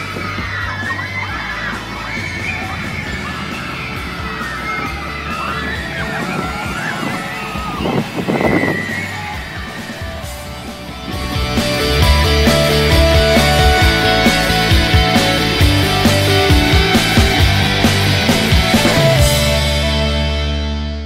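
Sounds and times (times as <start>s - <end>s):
roller coaster riders screaming: 0.0s - 17.5s.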